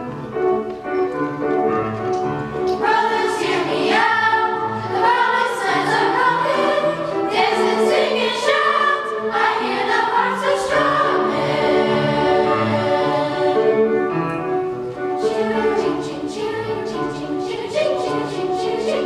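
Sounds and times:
low instrumental accompaniment: 0:00.0 - 0:19.0
children's choir singing: 0:02.6 - 0:19.0.

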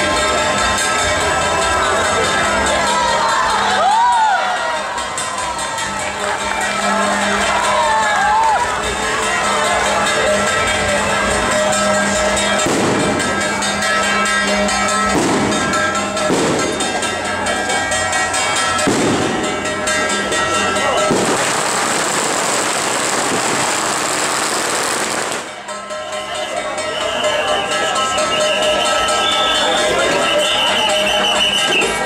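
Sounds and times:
music playing: 0:00.0 - 0:32.0
noisy crowd: 0:00.0 - 0:32.0
firecrackers crackling: 0:05.0 - 0:26.0.

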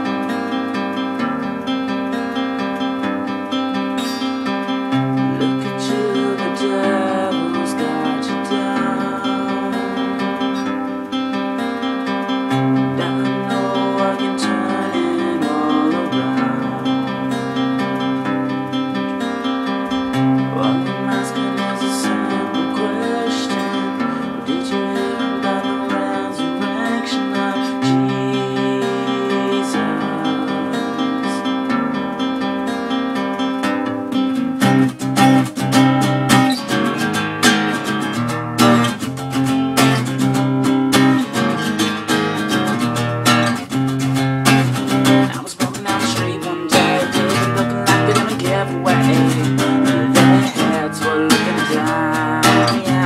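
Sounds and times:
acoustic guitar strumming chords: 0:00.0 - 0:53.0.

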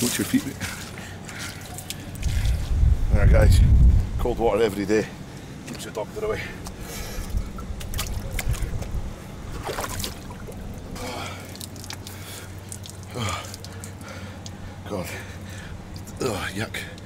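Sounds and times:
water splashing in a plastic barrel: 0:09.6 - 0:14.2
man gasping and grunting: 0:11.0 - 0:11.6.

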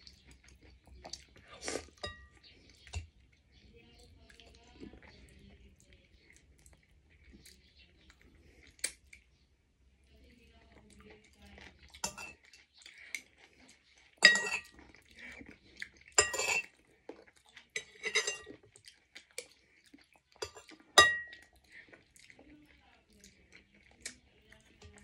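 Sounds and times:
cutlery clinking on ceramic dishes: 0:02.0 - 0:03.1, 0:12.0 - 0:12.5, 0:14.2 - 0:14.8, 0:16.2 - 0:16.7, 0:17.8 - 0:18.6, 0:20.4 - 0:21.5.

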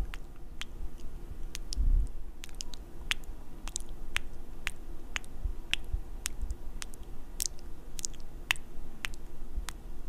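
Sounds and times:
wet kissing smacks: 0:02.4 - 0:09.2.

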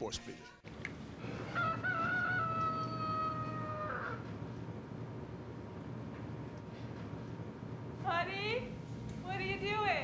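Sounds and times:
rooster crowing: 0:01.2 - 0:04.3.

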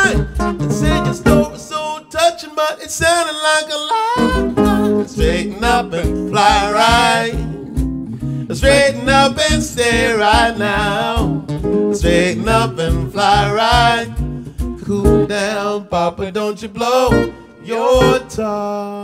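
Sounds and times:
pulsing bass line: 0:00.0 - 0:01.6, 0:04.2 - 0:15.3
jazz guitar: 0:00.0 - 0:01.9, 0:04.1 - 0:18.5
man scat singing: 0:00.0 - 0:07.9, 0:08.5 - 0:16.2, 0:17.0 - 0:19.0.

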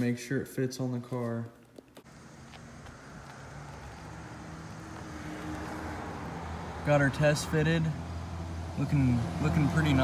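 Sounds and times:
car engine idling: 0:02.0 - 0:10.0.

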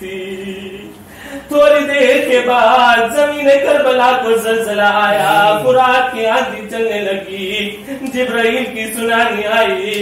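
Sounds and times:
man chanting slow melody: 0:05.0 - 0:06.0.

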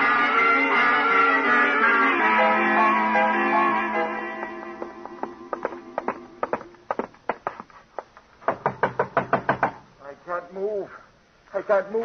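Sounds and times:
music bridge: 0:00.0 - 0:07.3
knocking on a door: 0:08.4 - 0:09.8.

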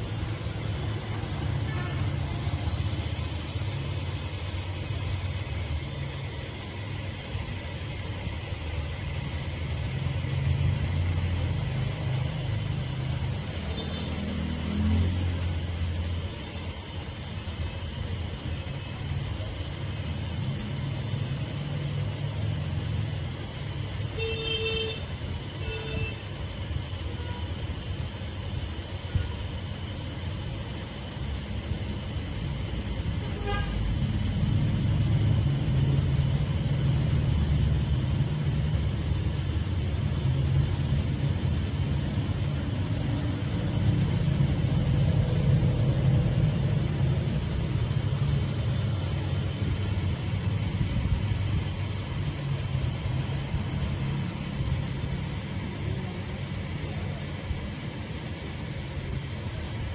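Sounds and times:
passing vehicle engines rumbling: 0:10.0 - 0:16.2, 0:32.8 - 0:57.4.

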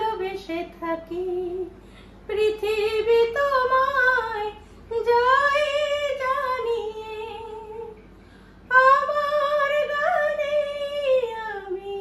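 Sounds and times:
woman singing unaccompanied: 0:00.0 - 0:08.0, 0:08.7 - 0:12.0
singer breathing: 0:01.8 - 0:02.3, 0:08.1 - 0:08.7.

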